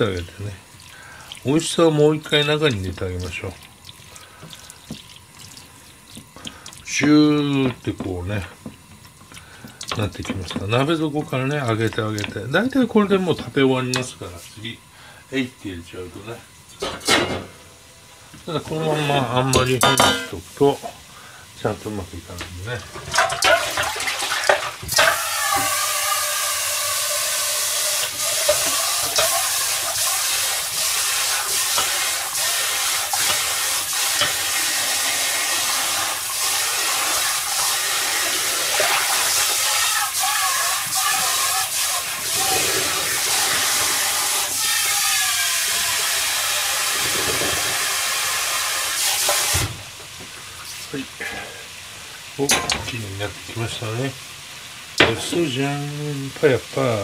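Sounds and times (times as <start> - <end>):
sauce sizzling in a frying pan: 0.0 - 16.6, 17.4 - 57.0.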